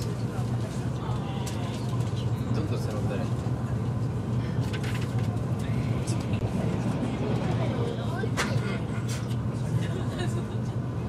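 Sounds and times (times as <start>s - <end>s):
train rumbling along track: 0.0s - 11.0s.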